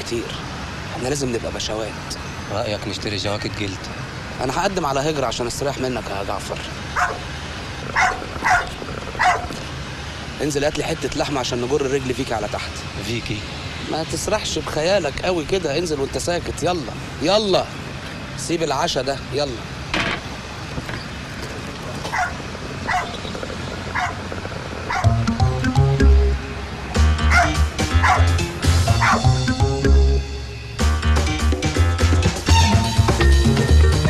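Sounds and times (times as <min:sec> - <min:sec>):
dogs barking: 0:06.9 - 0:09.7, 0:21.9 - 0:25.3, 0:27.2 - 0:29.4.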